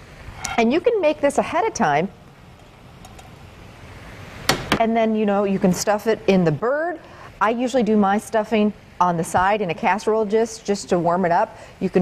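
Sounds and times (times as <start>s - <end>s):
woman speaking: 0.5s - 2.2s, 4.8s - 12.0s.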